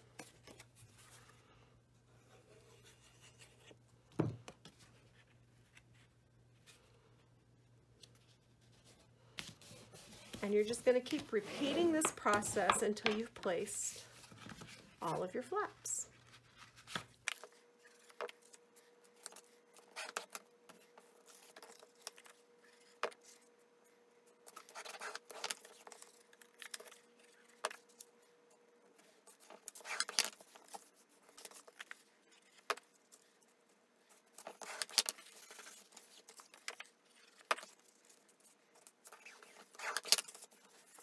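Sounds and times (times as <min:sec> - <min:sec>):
paper scraping on table: 0:09.5 - 0:12.5.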